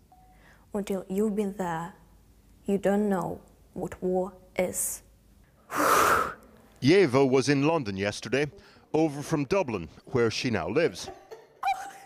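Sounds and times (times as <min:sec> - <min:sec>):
person gasping breath: 0:05.7 - 0:06.4.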